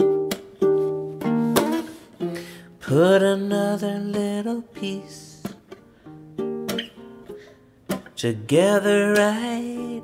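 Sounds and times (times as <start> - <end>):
acoustic guitar fingerpicked: 0.0 - 10.0
guitar strum: 0.0 - 10.0.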